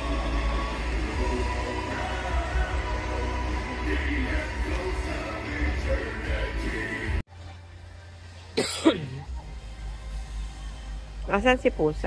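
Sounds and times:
music with low bass: 0:00.0 - 0:12.0.

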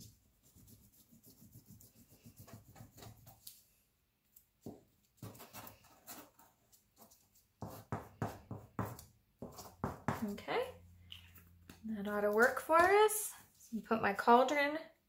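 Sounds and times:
glue stick rubbing on paper: 0:00.0 - 0:03.5.

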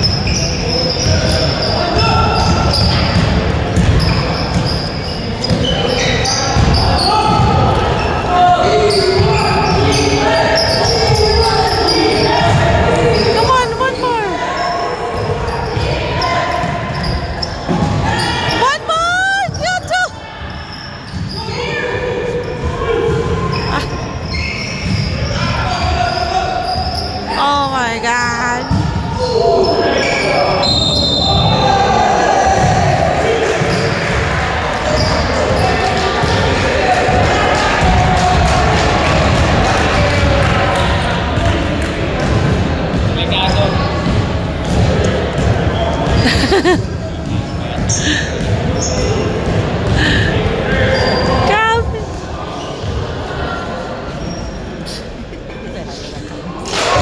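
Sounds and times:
shoe squeaks: 0:00.0 - 0:27.4, 0:28.5 - 0:31.6, 0:45.8 - 0:49.2, 0:50.8 - 0:51.8, 0:54.1 - 0:55.2
voices calling out: 0:00.0 - 0:39.1.

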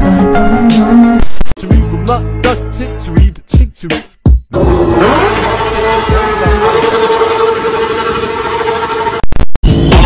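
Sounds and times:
engine whine: 0:04.6 - 0:09.5.

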